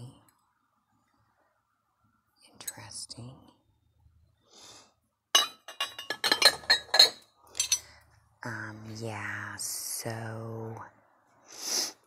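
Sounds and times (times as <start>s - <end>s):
ceramic dishes clinking: 5.4s - 7.9s.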